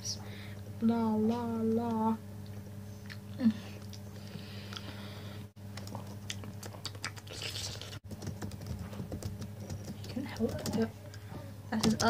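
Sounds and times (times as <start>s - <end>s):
low electrical hum: 0.0s - 12.0s
laptop keyboard typing: 8.1s - 10.9s, 11.8s - 12.0s.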